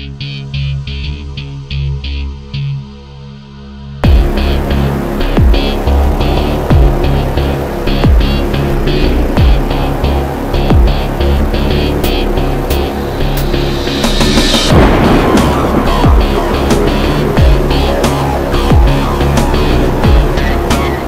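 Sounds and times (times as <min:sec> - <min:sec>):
darksynth electronic music: 0:00.0 - 0:21.0.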